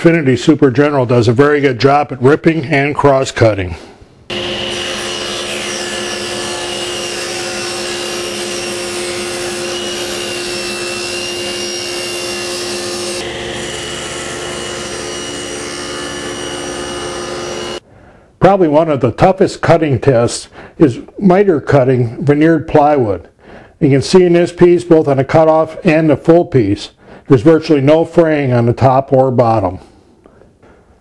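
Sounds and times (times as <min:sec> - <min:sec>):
saw blade whining through wood: 0:04.3 - 0:17.8
table saw motor hum: 0:04.3 - 0:17.8.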